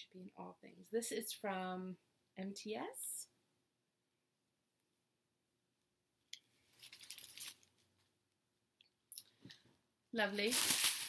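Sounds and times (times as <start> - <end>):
clothing and wrapping rustling: 6.5 - 8.1, 10.2 - 11.0.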